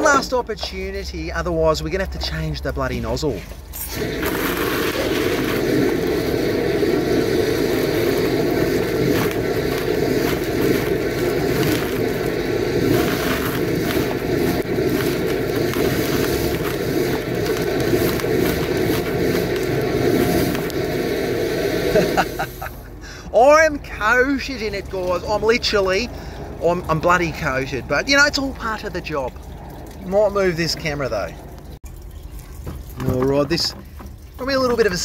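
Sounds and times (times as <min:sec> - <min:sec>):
high-pressure water spray from pipe: 0:03.6 - 0:22.8.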